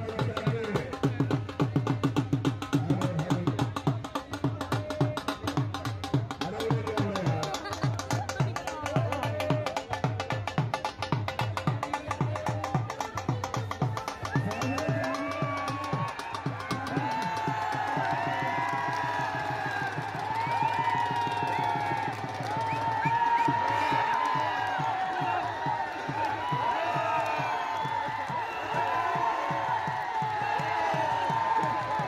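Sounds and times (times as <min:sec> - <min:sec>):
drum beaten in fast rhythm: 0:00.0 - 0:32.0
crowd shouting and whooping: 0:14.1 - 0:32.0.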